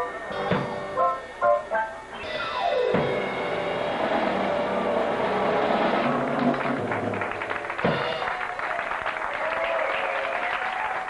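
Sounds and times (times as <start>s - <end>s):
electronic keyboard organ-like chords: 0.0s - 8.2s.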